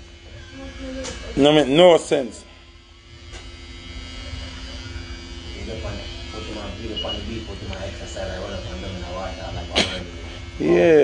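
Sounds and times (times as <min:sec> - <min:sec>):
low buzzing hum: 0:00.0 - 0:11.0.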